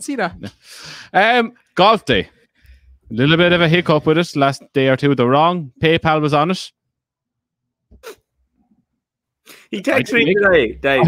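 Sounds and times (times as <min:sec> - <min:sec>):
man's voice burst: 0:09.6 - 0:11.0.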